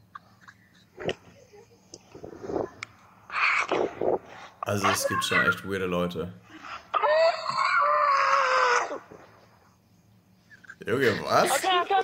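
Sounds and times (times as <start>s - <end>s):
woman screaming: 6.9s - 9.0s.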